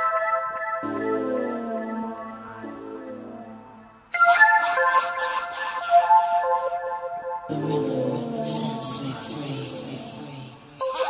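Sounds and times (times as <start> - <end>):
high synth melody: 0.8 - 4.5.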